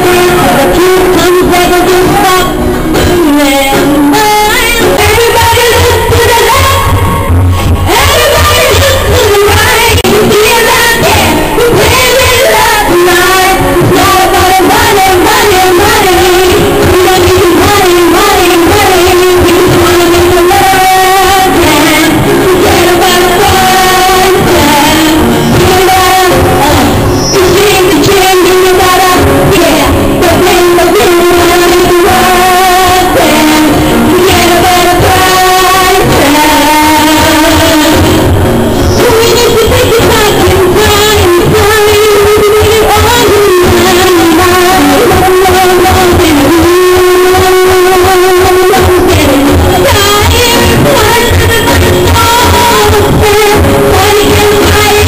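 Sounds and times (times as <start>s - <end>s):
acoustic guitar: 0.0s - 55.0s
woman singing into a microphone: 0.0s - 55.0s.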